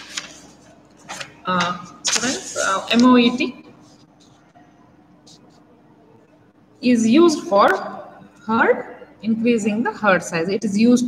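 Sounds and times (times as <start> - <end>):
paper sheet being handled: 0.0 - 4.4.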